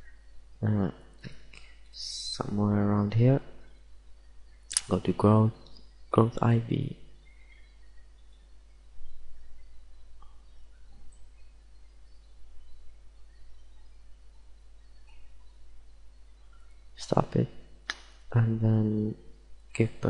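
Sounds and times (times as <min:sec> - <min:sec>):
faint chirps: 0:00.0 - 0:20.0
low electrical hum: 0:00.0 - 0:20.0.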